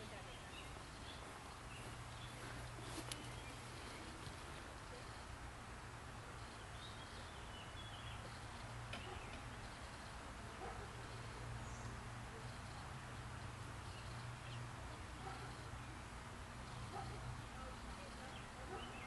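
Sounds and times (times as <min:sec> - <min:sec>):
steady low hum and hiss: 0:00.0 - 0:19.0.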